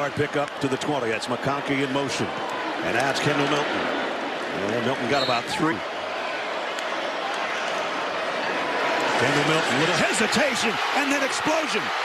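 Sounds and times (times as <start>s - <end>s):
stadium crowd din: 0.0s - 12.0s.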